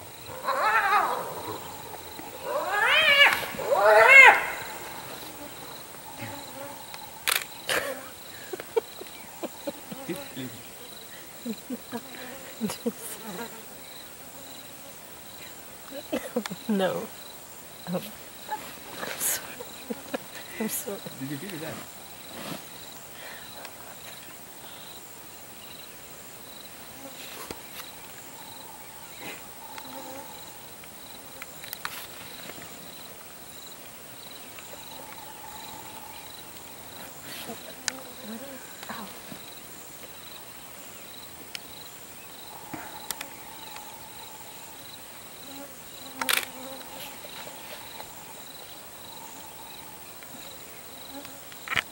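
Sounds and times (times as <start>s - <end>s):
insects buzzing and chirping: 0.0s - 51.9s.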